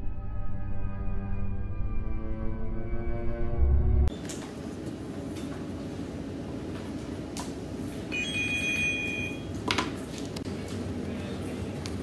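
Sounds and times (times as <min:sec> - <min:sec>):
phone ringtone: 0:08.1 - 0:09.5.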